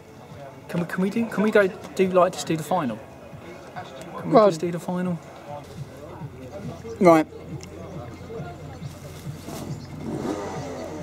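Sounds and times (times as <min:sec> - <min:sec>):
distant racing kart engines: 0:05.1 - 0:11.0.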